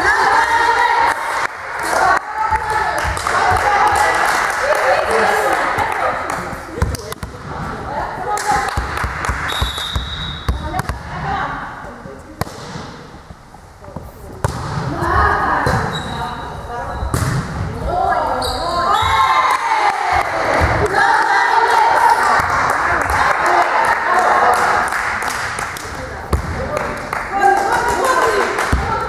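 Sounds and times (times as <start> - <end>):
volleyball impacts: 8.4 - 11.2, 14.4 - 15.9, 17.1 - 17.8, 25.5 - 27.0.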